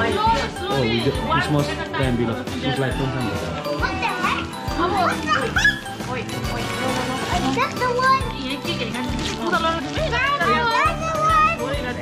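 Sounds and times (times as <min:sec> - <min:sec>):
background music with steady beat: 0:00.0 - 0:12.0
children's voices: 0:03.6 - 0:06.0, 0:07.4 - 0:08.5, 0:09.9 - 0:11.8.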